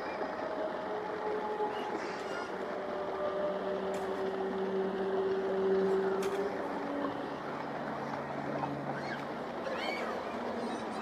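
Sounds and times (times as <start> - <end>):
noisy experimental music: 0.0 - 11.0.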